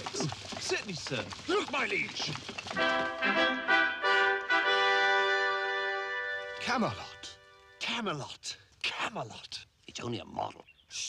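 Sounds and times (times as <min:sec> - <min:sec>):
brass fanfare with trumpets: 0:02.8 - 0:07.8.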